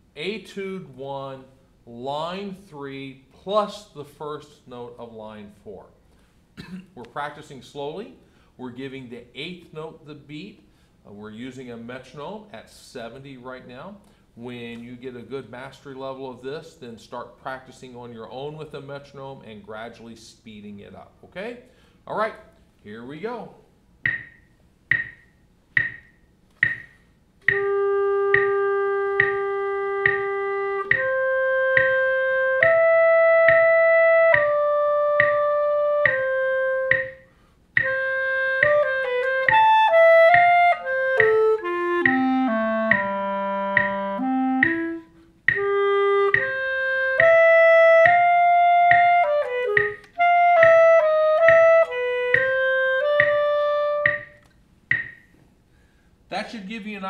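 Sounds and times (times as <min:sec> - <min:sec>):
metronome clicking: 0:24.0 - 0:55.4
solo clarinet playing: 0:27.4 - 0:54.4.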